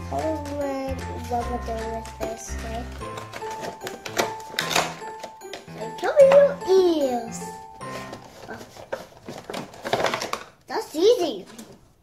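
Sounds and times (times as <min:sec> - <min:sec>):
child's voice: 0:00.0 - 0:03.1, 0:05.7 - 0:07.7, 0:10.7 - 0:11.8
plastic insert crinkling: 0:01.7 - 0:07.2, 0:07.8 - 0:10.7, 0:11.3 - 0:11.9.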